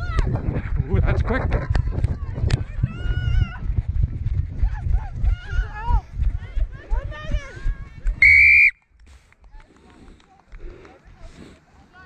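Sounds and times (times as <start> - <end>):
wind rumble: 0.0 - 9.2
running footfalls: 0.7 - 11.0.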